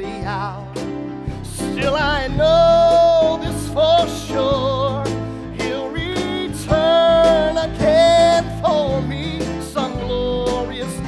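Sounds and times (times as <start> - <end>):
live band: 0.0 - 11.0
man singing: 0.0 - 11.0.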